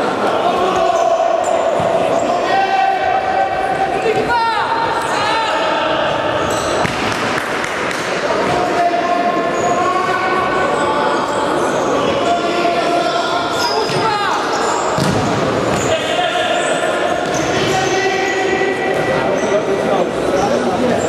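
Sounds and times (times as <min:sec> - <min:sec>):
shoes squeaking on hall floor: 0:03.7 - 0:07.0, 0:09.2 - 0:21.0.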